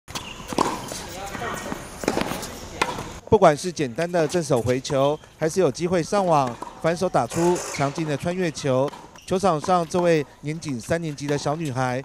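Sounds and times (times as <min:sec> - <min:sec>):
tennis ball pops: 0:00.5 - 0:00.9.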